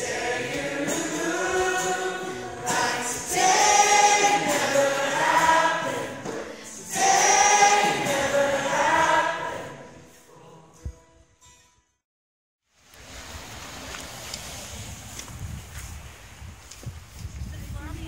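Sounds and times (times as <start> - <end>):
audience singing along: 0.0 - 10.2
person singing: 0.0 - 10.8
acoustic guitar: 0.0 - 12.0.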